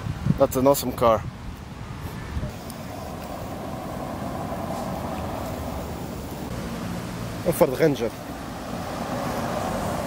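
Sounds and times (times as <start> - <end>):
road traffic rush: 0.0 - 10.0.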